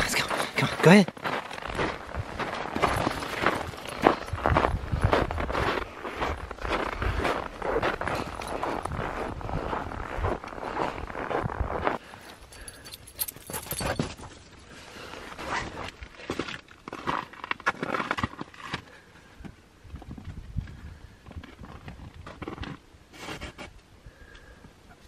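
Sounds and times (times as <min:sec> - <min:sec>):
footsteps in packed snow: 0:00.0 - 0:12.3.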